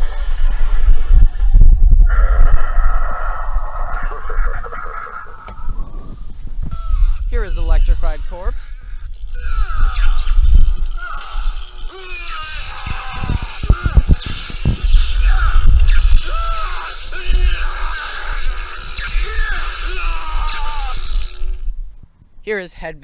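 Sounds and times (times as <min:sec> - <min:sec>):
wailing cries: 0:00.0 - 0:07.3, 0:08.5 - 0:21.7
sharp electric crackles: 0:00.0 - 0:22.0
low buzzing rumble: 0:00.0 - 0:22.5.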